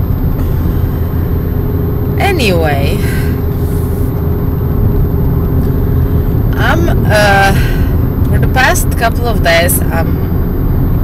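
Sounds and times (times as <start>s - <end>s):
engine and road rumble: 0.0s - 11.0s
faint constant hum: 0.0s - 11.0s.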